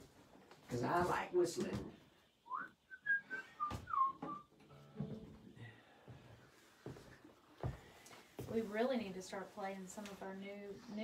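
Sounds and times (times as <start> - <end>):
person whistling: 2.4 - 4.5.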